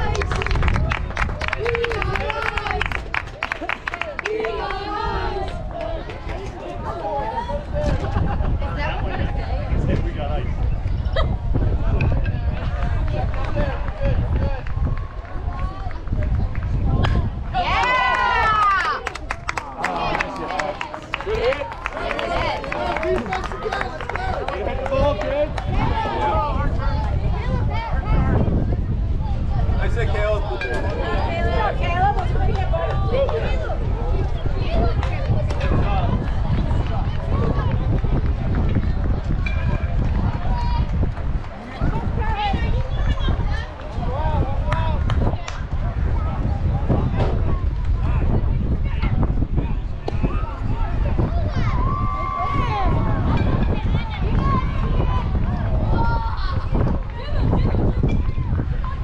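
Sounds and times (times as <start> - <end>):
spectators talking and calling out: 0.0 - 59.0
wind rumble on microphone: 0.0 - 59.0
loud drawn-out shout: 17.5 - 19.0.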